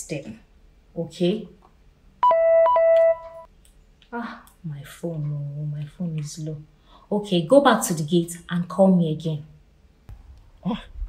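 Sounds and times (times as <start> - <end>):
phone alert chimes: 2.2 - 3.5.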